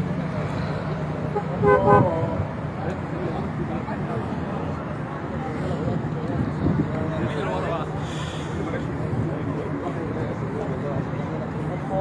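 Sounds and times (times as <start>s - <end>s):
street and traffic noise: 0.0s - 12.0s
car horn honk: 1.3s - 2.3s.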